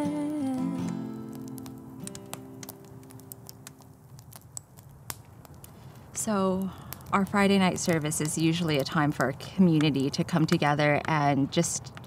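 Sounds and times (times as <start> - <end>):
acoustic guitar chord ringing: 0.0 - 2.6
campfire popping and crackling: 0.0 - 12.0.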